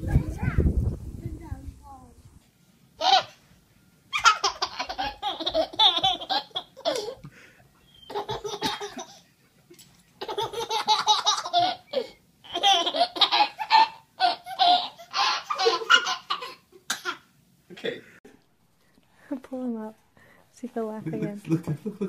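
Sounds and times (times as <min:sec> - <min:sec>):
baby laughing: 0:03.0 - 0:03.4, 0:04.1 - 0:07.2, 0:08.1 - 0:09.2, 0:10.2 - 0:17.2.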